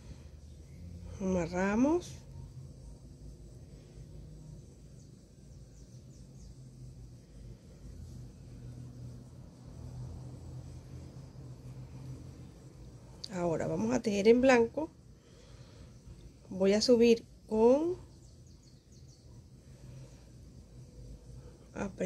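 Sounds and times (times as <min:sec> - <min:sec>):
faint low rumble: 0:00.0 - 0:22.0.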